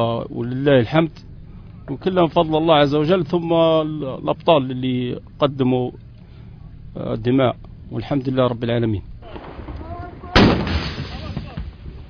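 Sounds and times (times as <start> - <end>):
weapon shot with echoing tail: 10.4 - 11.8.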